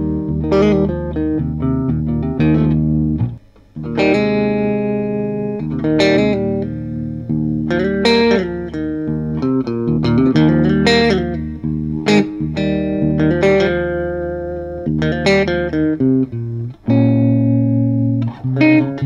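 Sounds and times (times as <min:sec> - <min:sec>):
electric guitar chords ringing: 0:00.0 - 0:19.0.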